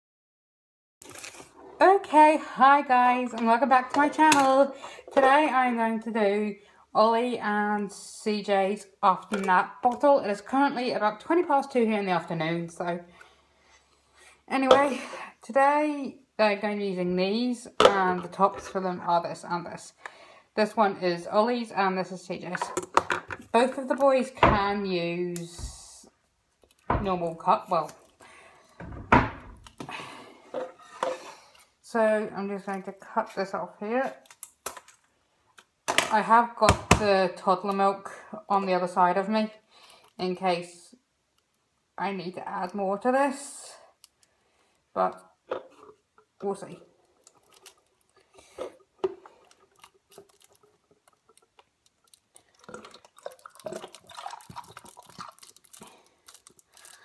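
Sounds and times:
handling and rustling: 0:01.0 - 0:01.9, 0:45.5 - 0:57.0
object thumping on hard surface: 0:28.8 - 0:29.6
milk pouring into cup: 0:49.2 - 0:55.9.

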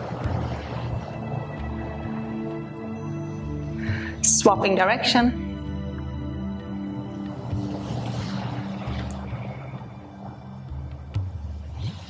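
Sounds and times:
soft ambient pad music: 0:00.0 - 0:12.0.

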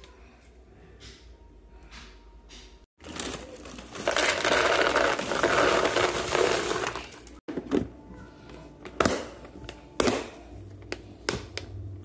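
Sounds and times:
crackers rattling into plastic container: 0:03.0 - 0:07.4.

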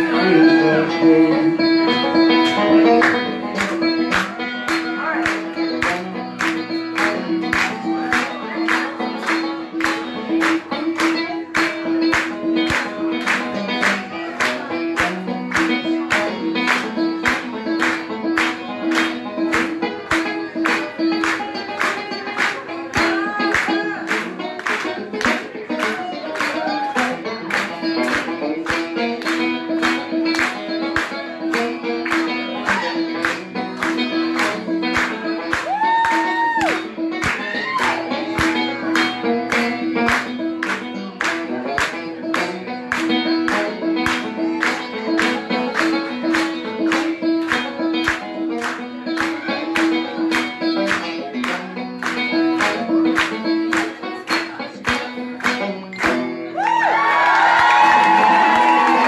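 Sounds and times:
live band playing: 0:00.0 - 0:59.0
hand claps: 0:01.9 - 0:59.0.

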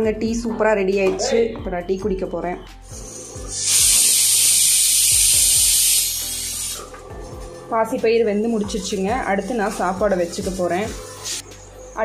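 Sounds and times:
pressure cooker whistle hissing: 0:02.9 - 0:06.8.

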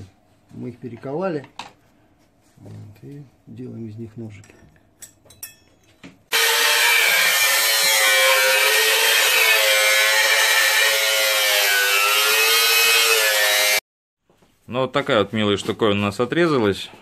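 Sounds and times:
angle grinder cutting metal: 0:06.3 - 0:13.8.

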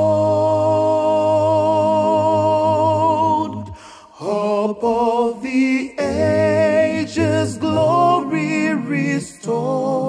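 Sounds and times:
male vocal group holding a chord: 0:00.0 - 0:10.0.

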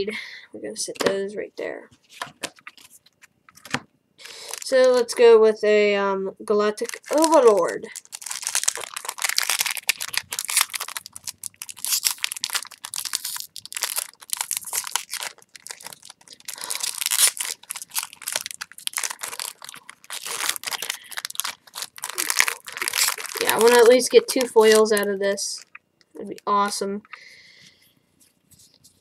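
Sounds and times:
foil wrapper tearing and crinkling: 0:04.2 - 0:05.1, 0:06.8 - 0:25.7.

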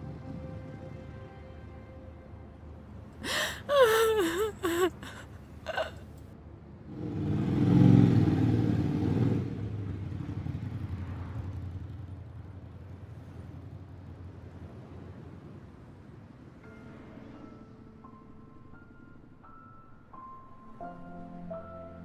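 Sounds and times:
woman sobbing: 0:03.2 - 0:06.1
motorcycle passing: 0:06.9 - 0:15.1.

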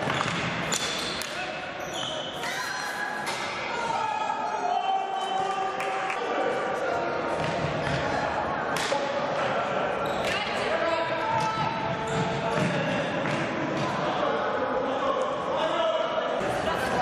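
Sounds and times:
hockey sticks striking ball: 0:00.0 - 0:01.4.

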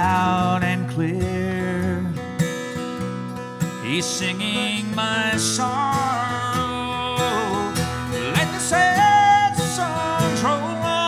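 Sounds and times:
strummed acoustic guitar: 0:00.0 - 0:11.0.

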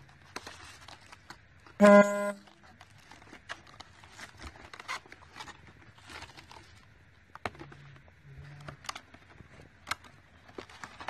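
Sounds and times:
loud steady honk: 0:01.8 - 0:02.4.

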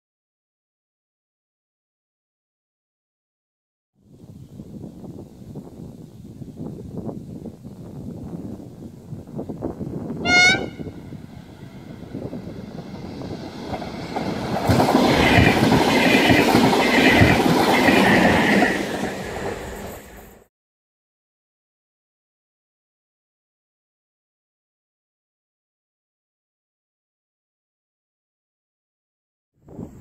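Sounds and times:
high whine of passing train: 0:04.1 - 0:20.5
train horn blast: 0:10.2 - 0:11.1
train wheels clattering over rail joints: 0:13.4 - 0:20.2.

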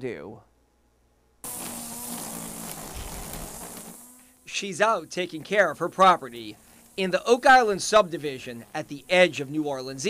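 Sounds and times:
string trimmer whirring: 0:01.4 - 0:10.0.

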